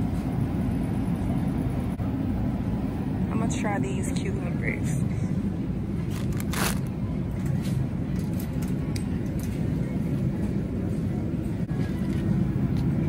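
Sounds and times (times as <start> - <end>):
shopping cart rumbling: 6.0 - 8.9.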